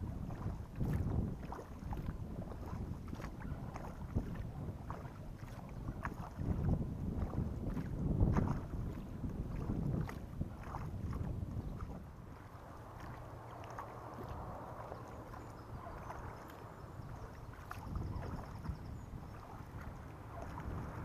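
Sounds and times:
kayak paddle strokes in water: 0:00.0 - 0:21.0
wind rumble on microphone: 0:00.0 - 0:21.0
water dripping off paddle: 0:00.3 - 0:08.6, 0:09.5 - 0:21.0.

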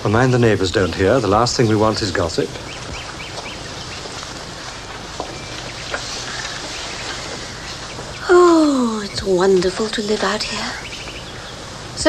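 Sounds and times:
steady recording hiss: 0:00.0 - 0:12.0.

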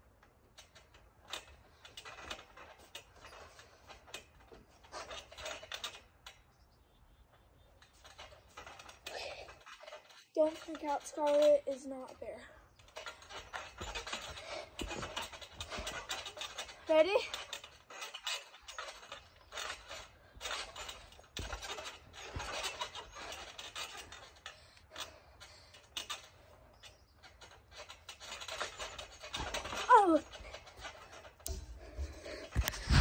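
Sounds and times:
girl vocal sound: 0:29.9 - 0:30.3
girl breathing hard: 0:31.6 - 0:33.0.

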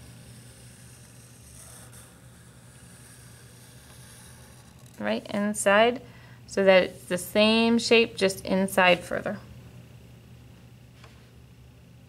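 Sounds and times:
marker drawing on paper: 0:00.0 - 0:05.0
steady low hum: 0:00.0 - 0:12.0.

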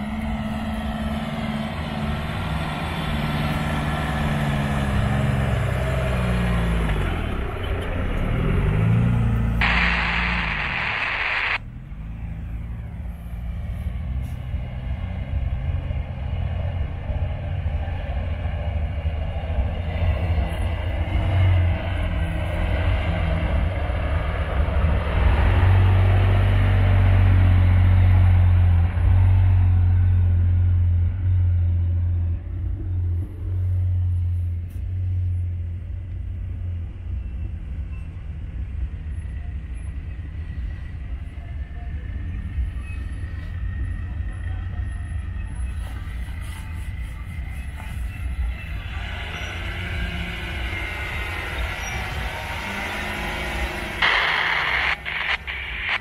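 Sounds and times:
off-road truck engines: 0:00.0 - 0:56.0
loud hiss: 0:09.6 - 0:11.6, 0:54.0 - 0:56.0.

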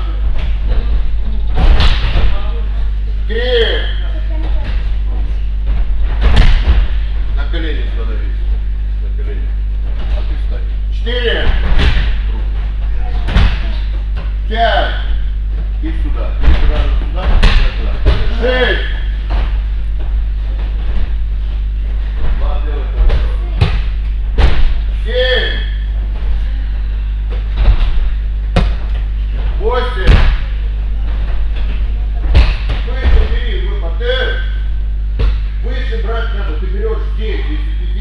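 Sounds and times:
bodies thudding onto gym mats: 0:00.0 - 0:02.6, 0:04.3 - 0:07.4, 0:11.2 - 0:25.0, 0:25.9 - 0:33.5
steady low hum: 0:00.0 - 0:38.0.

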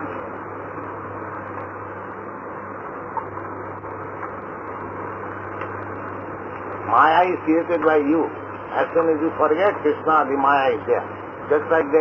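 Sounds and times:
low hum: 0:00.0 - 0:12.0
tape hiss: 0:00.0 - 0:12.0.

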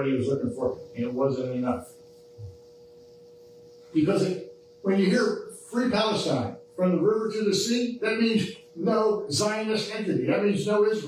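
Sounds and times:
man speaking: 0:00.0 - 0:01.9, 0:04.0 - 0:11.0
faint steady hum: 0:00.0 - 0:11.0.

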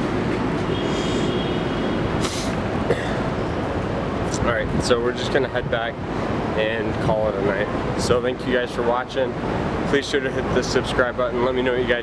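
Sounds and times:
street traffic rumble: 0:00.0 - 0:12.0
short hiss: 0:00.8 - 0:01.4, 0:02.2 - 0:02.6.

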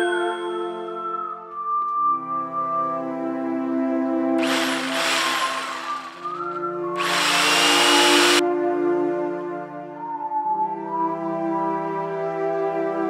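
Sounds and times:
jigsaw cutting plastic sheet: 0:04.4 - 0:08.4.

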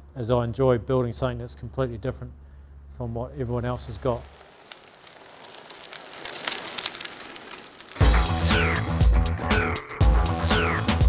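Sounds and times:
bicycle tyre hiss on asphalt: 0:03.7 - 0:09.0.

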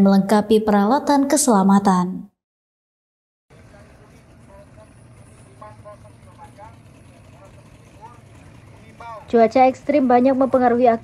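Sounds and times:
faint indistinct voices: 0:03.5 - 0:10.6
low engine hum: 0:03.5 - 0:11.0.

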